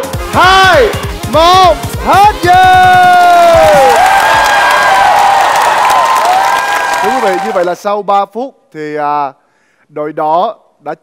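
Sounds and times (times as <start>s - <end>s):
audience clapping and cheering: 2.1s - 7.8s.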